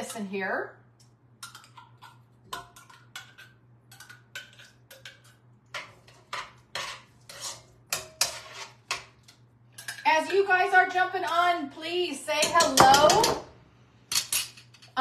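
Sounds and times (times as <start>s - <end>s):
utensil scraping a skillet: 1.5s - 10.5s.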